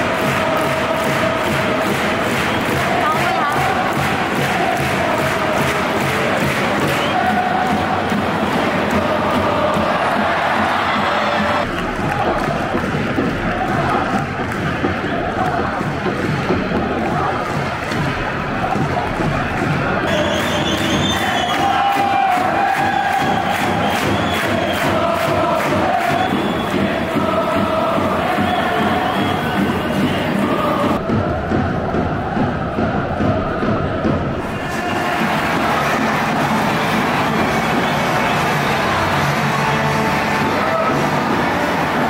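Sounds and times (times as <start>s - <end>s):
crowd roar: 0.0s - 42.0s
crowd singing a chant: 0.0s - 42.0s
steady drumbeat: 0.0s - 42.0s.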